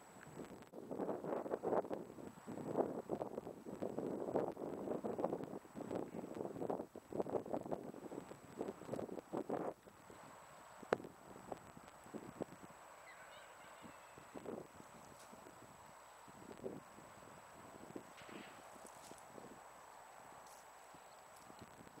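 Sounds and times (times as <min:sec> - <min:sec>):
wind buffeting microphone: 0:00.3 - 0:12.8, 0:13.8 - 0:19.7, 0:20.9 - 0:22.0.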